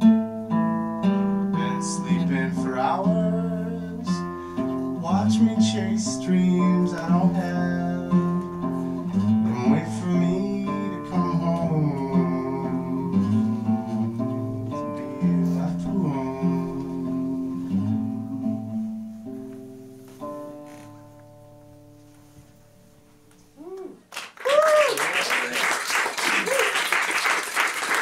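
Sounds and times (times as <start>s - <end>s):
nylon-string guitar strummed chords: 0.0s - 23.3s.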